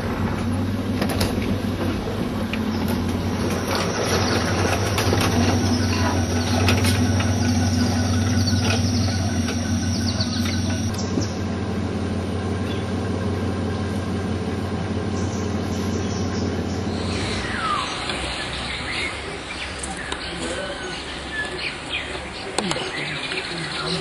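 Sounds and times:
knocks and rattles of bumping vehicle: 0.0 - 11.4
vehicle engine droning: 0.0 - 24.0.

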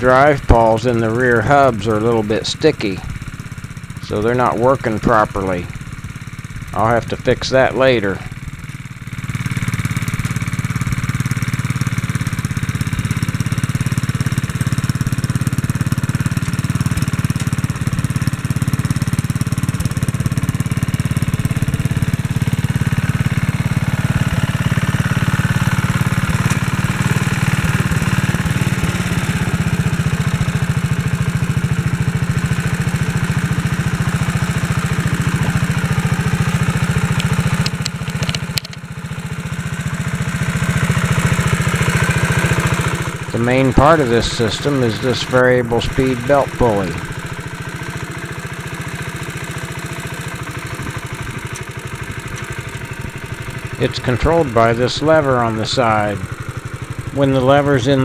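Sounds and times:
single-cylinder tractor engine running: 0.0 - 58.0.

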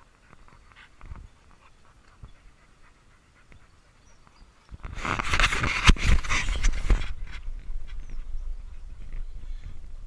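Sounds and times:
dog panting faintly: 0.0 - 4.8.

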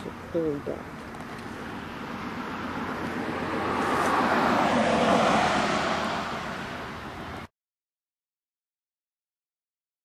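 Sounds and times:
vehicle passing: 0.0 - 7.5.

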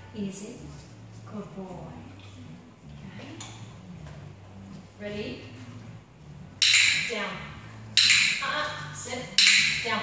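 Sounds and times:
steady low hum: 0.0 - 10.0
woman speaking: 0.1 - 2.2, 5.0 - 5.6, 8.4 - 10.0.

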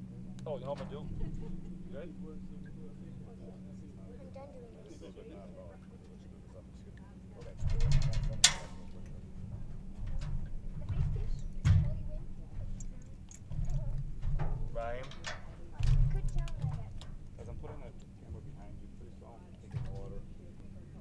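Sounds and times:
low thumps and rumbling bursts: 0.0 - 4.6, 7.4 - 20.4.

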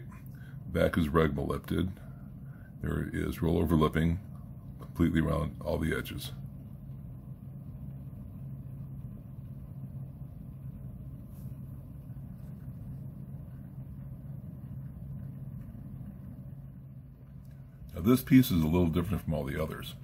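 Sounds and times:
steady low motor hum: 0.0 - 20.0.

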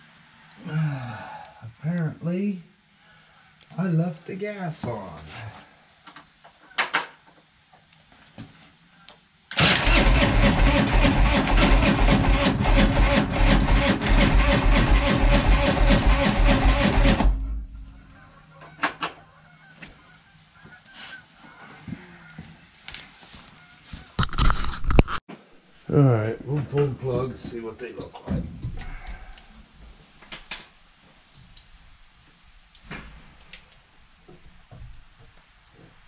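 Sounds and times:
motorcycle starter cranking: 9.5 - 17.7.

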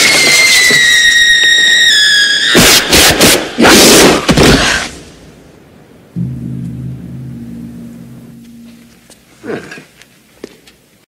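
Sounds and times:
low held musical note: 6.2 - 9.4.

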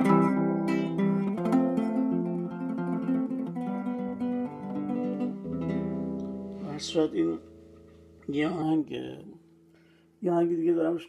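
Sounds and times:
classical guitar fingerpicked: 0.0 - 10.0.

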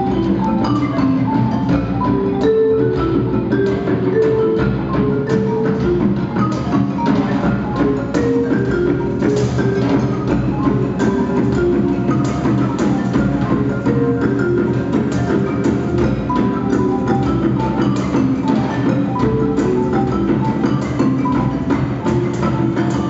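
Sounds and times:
drum kit: 0.0 - 23.0
hand drums: 0.0 - 23.0
marimba melody: 0.0 - 23.0
wood block strokes: 0.0 - 23.0.

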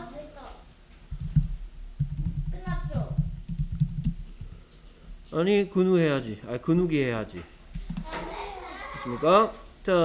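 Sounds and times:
typing on computer keyboard: 1.1 - 4.6
person speaking: 2.1 - 3.4.

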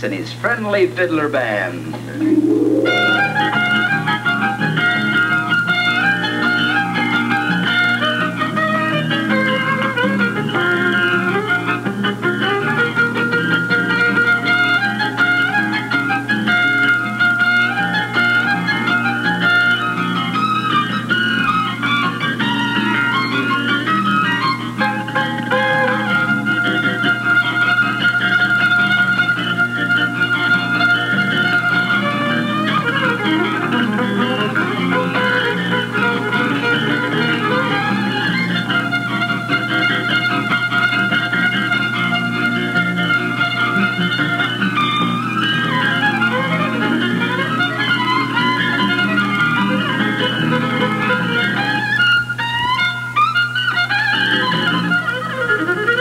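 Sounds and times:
fiddle band playing: 1.4 - 15.7, 16.4 - 56.0.

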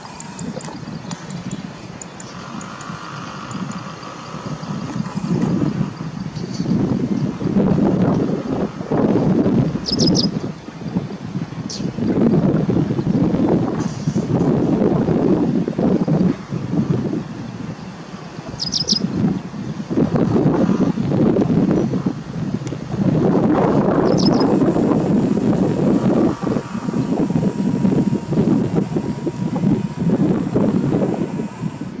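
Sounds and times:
wind buffeting microphone: 0.0 - 32.0
high bird chirps: 9.8 - 10.4, 18.6 - 19.1, 24.0 - 24.5.

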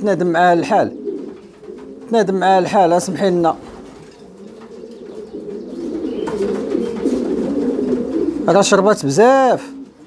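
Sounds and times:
pigeons cooing: 0.0 - 10.0.

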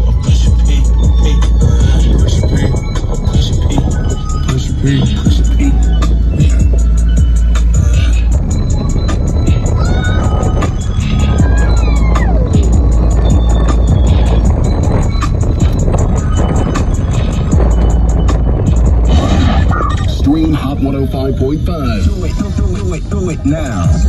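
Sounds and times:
song with heavy bass beat: 0.0 - 24.0
falling synth glide: 1.3 - 22.7.

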